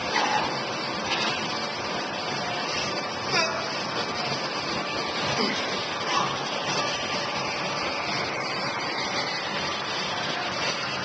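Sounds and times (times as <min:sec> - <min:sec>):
noisy gym background: 0:00.0 - 0:11.0.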